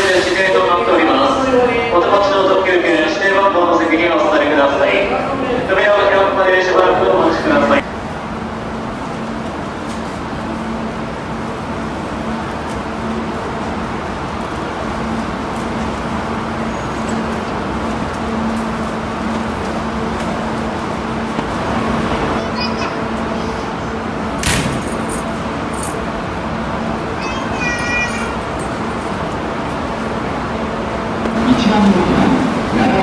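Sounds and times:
electric train equipment humming: 0.0 - 33.0
station background noise: 0.0 - 33.0.

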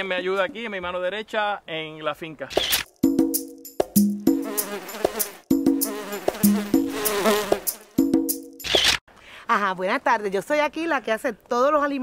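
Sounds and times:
cartoon bee buzzing: 2.5 - 9.0.

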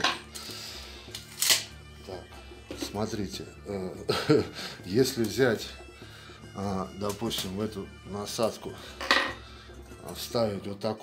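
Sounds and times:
background music: 0.0 - 11.0
metal bits knocking on table: 9.0 - 9.4.

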